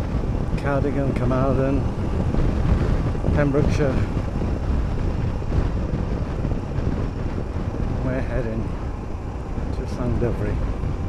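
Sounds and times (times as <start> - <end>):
motorcycle engine running: 0.0 - 11.0
road noise: 0.0 - 11.0
wind on microphone: 0.0 - 11.0.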